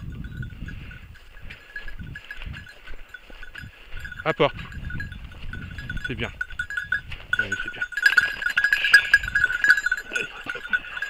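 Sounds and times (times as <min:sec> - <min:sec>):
small collar bell jingling: 0:00.0 - 0:11.0.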